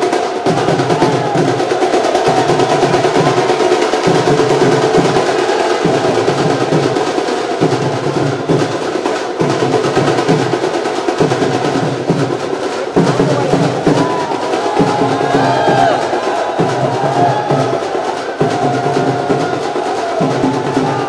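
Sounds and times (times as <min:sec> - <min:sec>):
music with fast drumming: 0:00.0 - 0:21.0.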